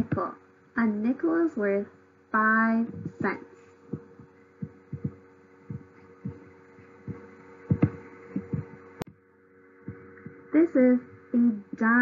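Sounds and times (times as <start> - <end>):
faint electrical hum: 0.0 - 12.0
soft low thumps: 2.6 - 9.2, 9.8 - 12.0.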